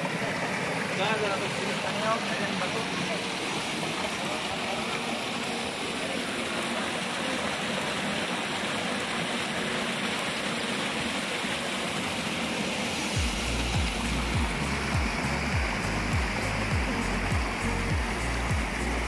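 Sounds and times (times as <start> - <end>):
stream water flowing: 0.0 - 19.0
music with thudding beat: 13.2 - 18.8.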